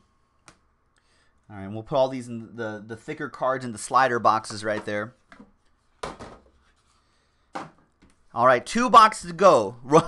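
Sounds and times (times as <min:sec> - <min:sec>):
boxes set down on table: 0:06.0 - 0:06.6.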